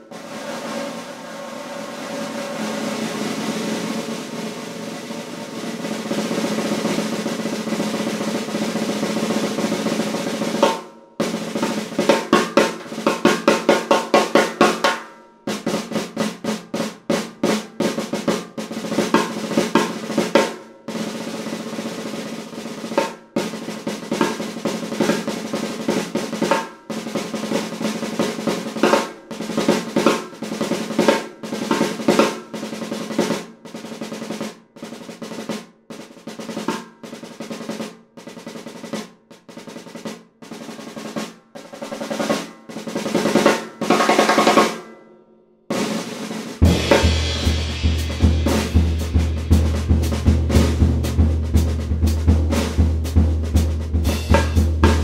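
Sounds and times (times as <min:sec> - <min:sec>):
snare drum rolls and strokes: 0:00.0 - 0:45.0, 0:45.7 - 0:55.0.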